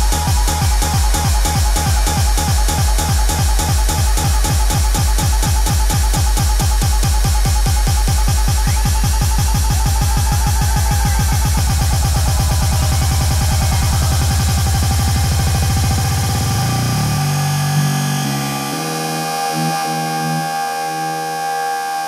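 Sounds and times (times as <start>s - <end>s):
electronic dance music beat: 0.0s - 22.0s
held synth chords: 0.0s - 22.0s.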